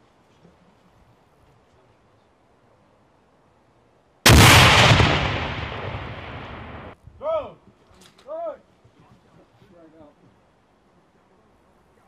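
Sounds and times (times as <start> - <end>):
grenade explosion: 4.2 - 7.0.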